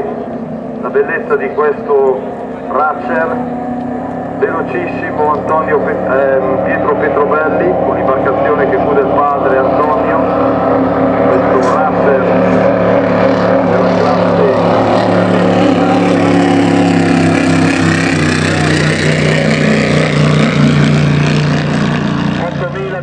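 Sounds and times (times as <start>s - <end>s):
racing boat engine roaring: 0.0s - 23.0s.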